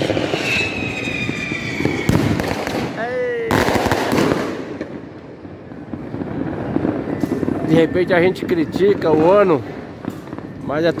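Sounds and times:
falling firework whistle: 0.0s - 2.5s, 6.6s - 9.2s
fireworks bangs and crackles: 0.0s - 11.0s.

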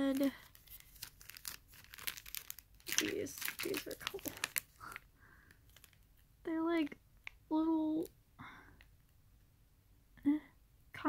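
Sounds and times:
plastic packaging crinkling: 0.0s - 6.2s.

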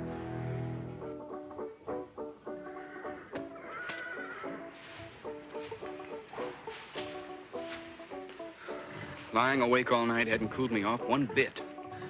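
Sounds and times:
horse whinnying: 2.6s - 4.8s
music of short clipped notes: 4.8s - 8.5s.

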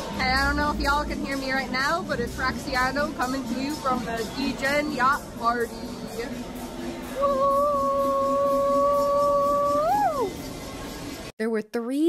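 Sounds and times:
party room din: 0.0s - 11.3s
woman cheering woo: 7.2s - 10.4s.

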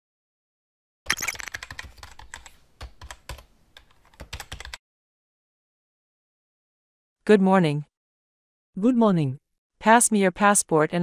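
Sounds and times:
computer keyboard typing: 1.1s - 4.8s.

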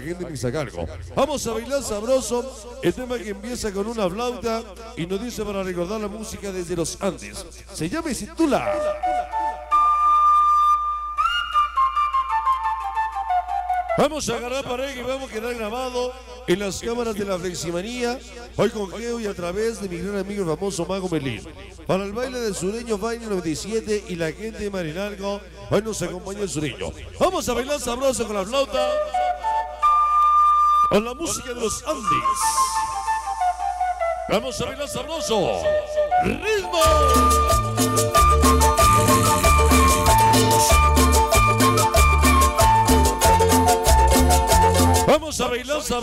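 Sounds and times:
solo flute melody: 8.6s - 14.3s, 28.7s - 45.1s.

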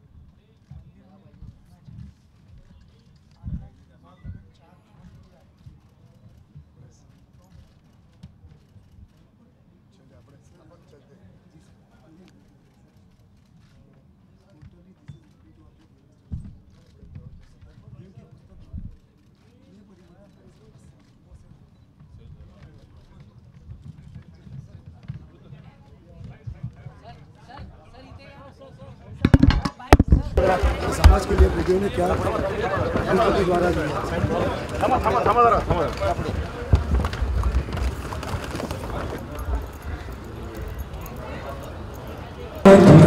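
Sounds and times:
people chattering: 19.4s - 43.0s
crowd voices: 29.1s - 43.0s
sharp knocks or pops: 29.2s - 31.6s
low rumble: 42.7s - 43.0s.

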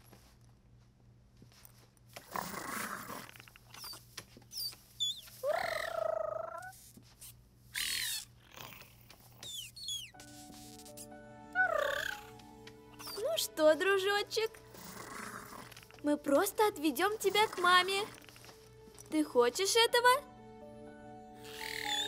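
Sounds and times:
creature squealing cries: 5.0s - 6.8s, 7.8s - 8.3s, 11.6s - 12.4s, 21.4s - 22.0s
soft sustained music notes: 10.2s - 22.0s.

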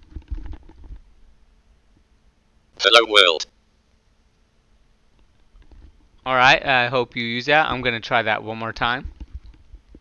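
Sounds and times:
headset microphone handling noise: 0.0s - 1.1s, 5.2s - 6.2s, 9.0s - 10.0s.

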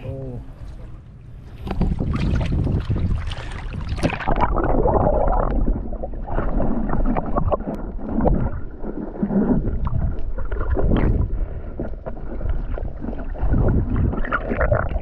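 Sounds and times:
water rushing and gurgling underwater: 0.0s - 15.0s.

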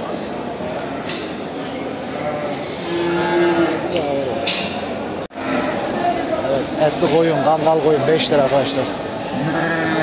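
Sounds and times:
livestock market din: 0.0s - 10.0s
sheep bleating: 9.3s - 10.0s.

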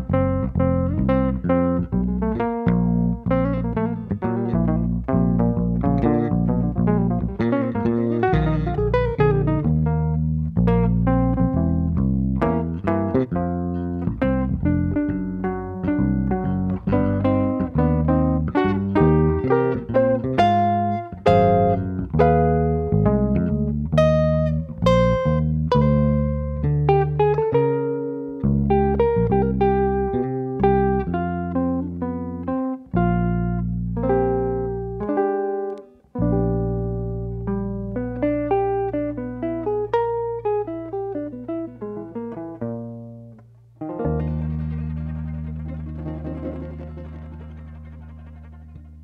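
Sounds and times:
electric guitar melody: 0.0s - 49.0s
plucked bass guitar notes: 0.0s - 49.0s.

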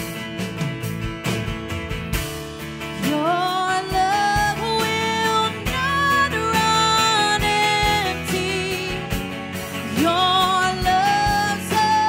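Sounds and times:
strummed acoustic guitar: 0.0s - 12.0s
woman singing: 3.0s - 12.0s.

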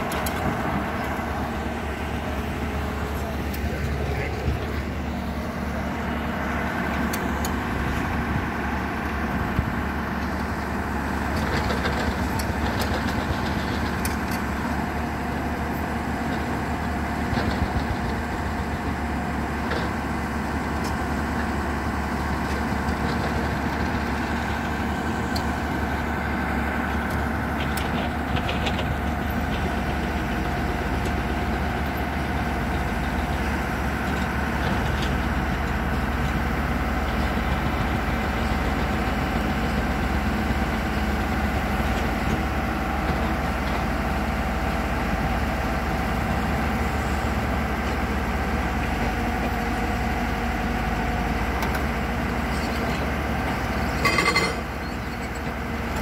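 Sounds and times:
excavator diesel engine running: 0.0s - 56.0s.

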